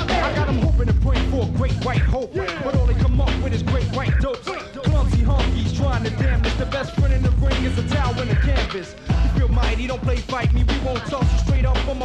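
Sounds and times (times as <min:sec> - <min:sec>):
rapping over heavy bass beat: 0:00.0 - 0:12.0.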